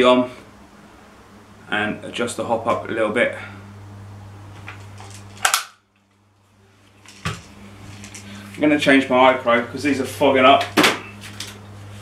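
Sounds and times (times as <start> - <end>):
sharp mechanical click: 5.4 - 5.8.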